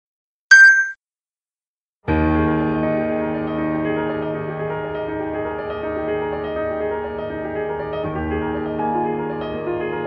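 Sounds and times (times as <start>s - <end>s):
short bright ding: 0.5s - 1.0s.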